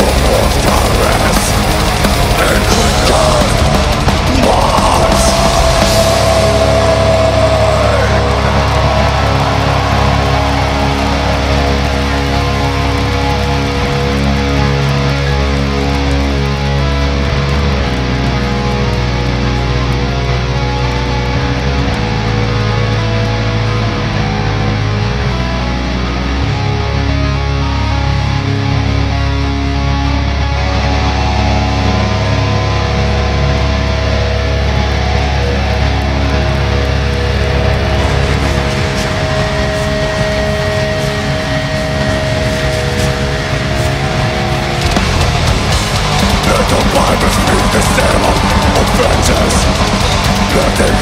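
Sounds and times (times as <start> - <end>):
distorted electric guitars and bass: 0.0 - 51.0
extreme metal band playing live: 0.0 - 51.0.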